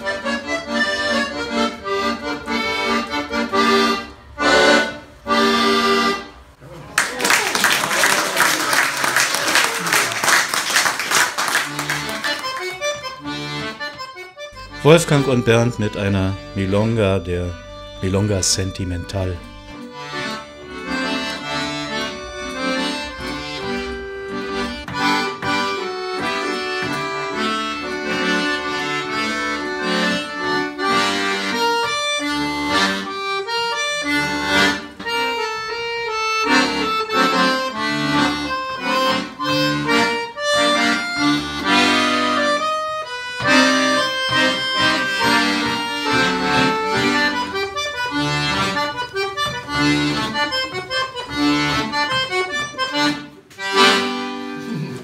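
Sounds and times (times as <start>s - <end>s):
accordion duet: 0.0s - 6.8s, 8.4s - 55.0s.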